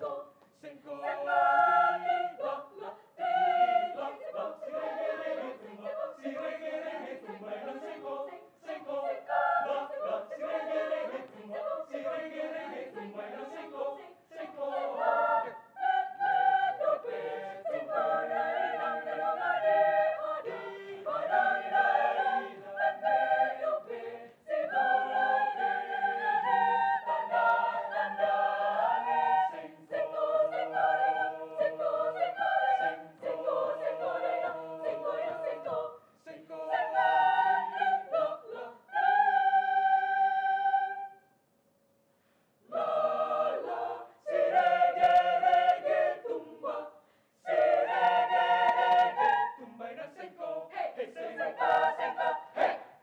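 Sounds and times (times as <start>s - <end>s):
mixed choir singing: 0.0s - 41.2s, 42.6s - 53.0s.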